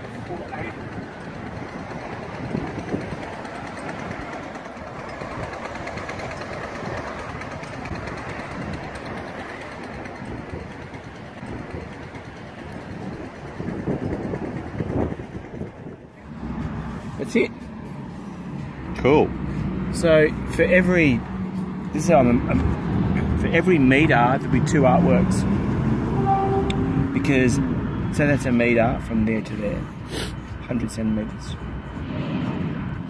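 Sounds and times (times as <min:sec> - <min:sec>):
traffic rumble: 0:00.0 - 0:33.0.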